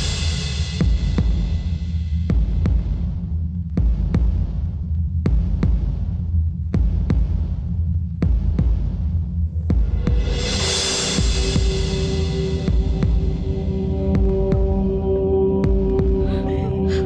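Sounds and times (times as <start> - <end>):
heartbeat-like thuds: 0.8 - 16.5
low steady drone: 9.7 - 17.0.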